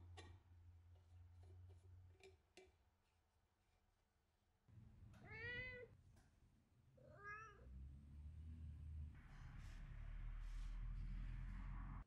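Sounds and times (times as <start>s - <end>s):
cat meowing: 5.2s - 5.9s, 7.0s - 7.7s.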